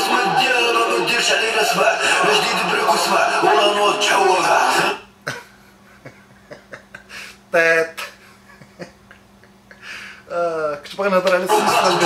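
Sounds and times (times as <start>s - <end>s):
person laughing: 5.3s - 7.3s.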